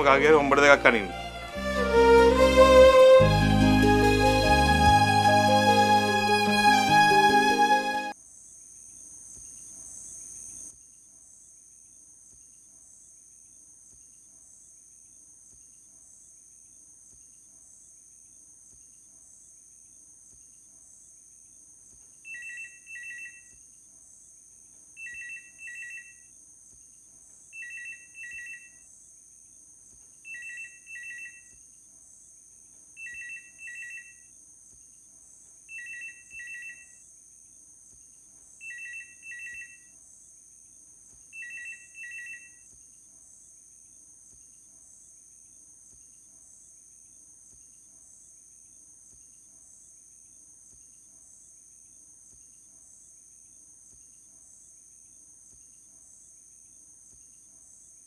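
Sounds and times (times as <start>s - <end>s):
crickets chirring: 8.2s - 58.0s
telephone ringing: 22.3s - 23.5s, 25.0s - 26.2s, 27.6s - 28.8s, 30.3s - 31.5s, 33.0s - 34.2s, 35.7s - 37.0s, 38.6s - 39.8s, 41.4s - 42.6s.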